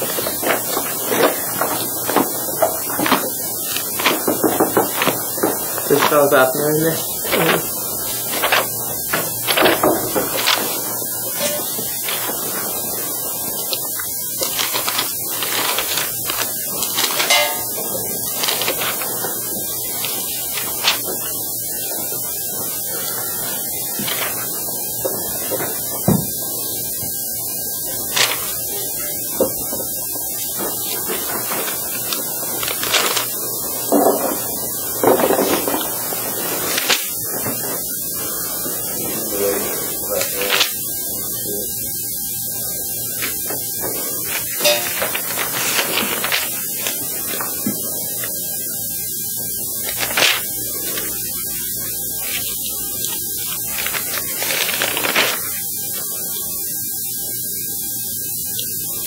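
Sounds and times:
electrical hum: 0.0s - 59.0s
faint steady whine: 0.0s - 59.0s
steady hiss: 0.0s - 59.0s.

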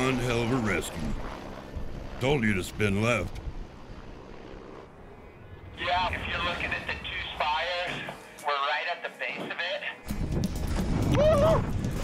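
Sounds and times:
helicopter flying away: 0.0s - 12.0s.

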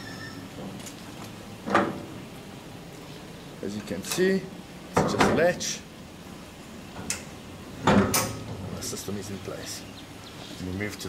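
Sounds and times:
faint squeak: 0.0s - 0.5s
trailer coupler handling noise: 0.6s - 2.3s, 6.9s - 9.0s.

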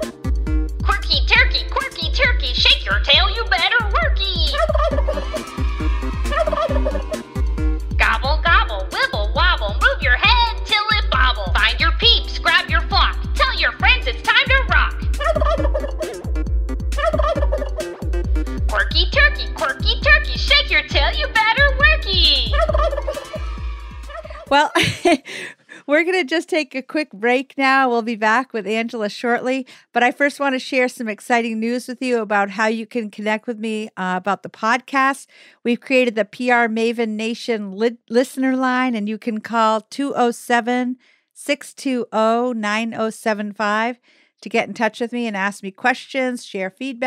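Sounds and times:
children's song with beat: 0.0s - 25.1s
turkey gobble: 4.6s - 5.4s, 15.2s - 16.2s, 17.0s - 18.0s, 22.6s - 23.4s.

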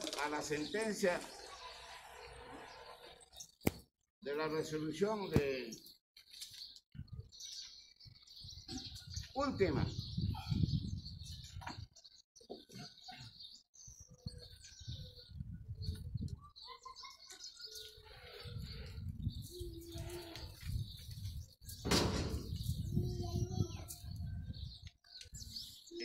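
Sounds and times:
small birds chirping: 0.0s - 26.0s.

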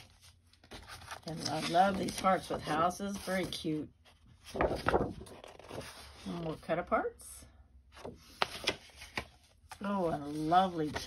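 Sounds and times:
paper snapping and rustling: 4.6s - 5.8s.

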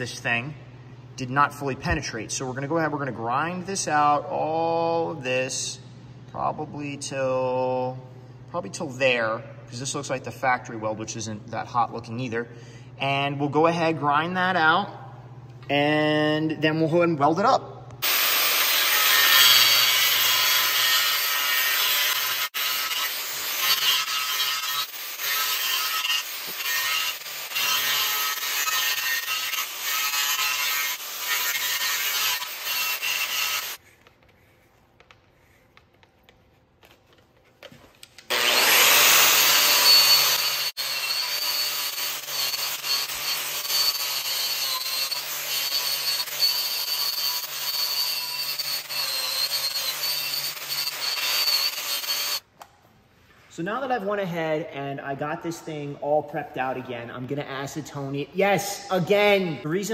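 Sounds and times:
angle grinder grinding metal: 18.0s - 33.8s, 38.3s - 52.5s.

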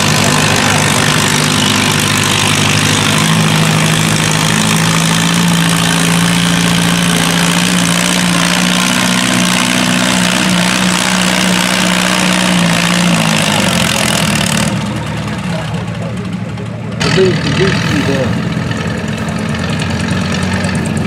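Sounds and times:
tractor engine running under load: 0.0s - 21.0s.

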